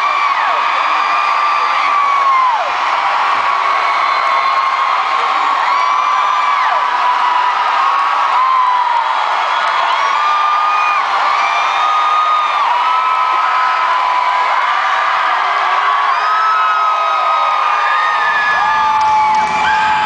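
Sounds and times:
crowd screaming and cheering: 0.0 - 20.0.

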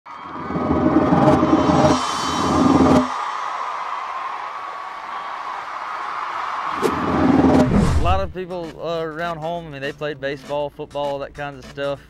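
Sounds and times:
steady drone: 0.2 - 3.2
sharp hit: 0.2 - 3.4, 6.8 - 8.3
heavy drum hit: 0.5 - 3.2, 6.9 - 8.3
low boom: 7.0 - 8.3.

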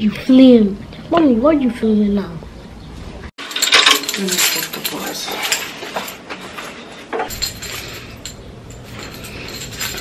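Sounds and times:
metallic clinking and jingling: 3.4 - 10.0.

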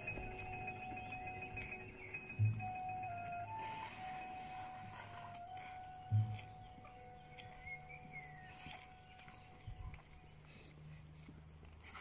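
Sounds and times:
soft low thumps: 0.0 - 3.5, 6.0 - 8.2
faint steady tone: 0.0 - 12.0.

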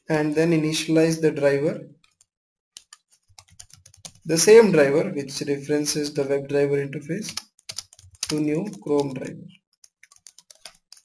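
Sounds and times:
computer keyboard typing: 2.0 - 4.3, 7.2 - 11.0.

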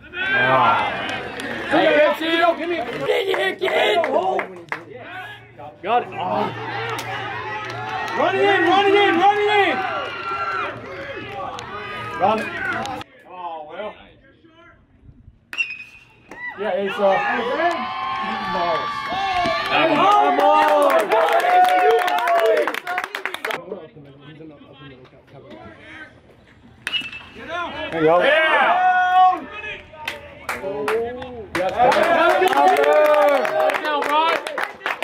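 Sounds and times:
spectators shouting: 0.0 - 13.0, 16.3 - 22.9, 27.4 - 29.9
metal bat hitting baseball: 15.5 - 16.1, 26.8 - 27.4
metal bat hitting ball: 26.8 - 27.3.

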